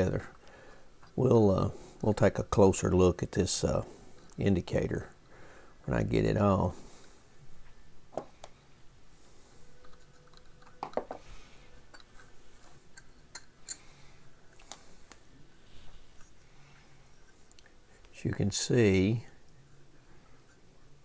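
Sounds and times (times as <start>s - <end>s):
screwdriver and metal parts clicking: 12.9s - 13.9s.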